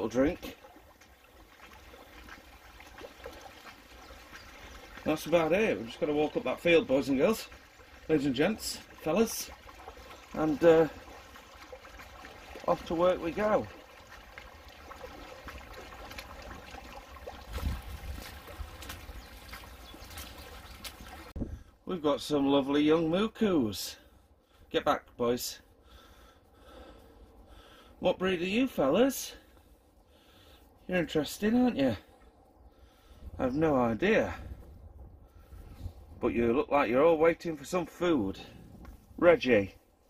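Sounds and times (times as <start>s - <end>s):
faint water trickle: 0.0s - 21.7s, 25.5s - 36.3s.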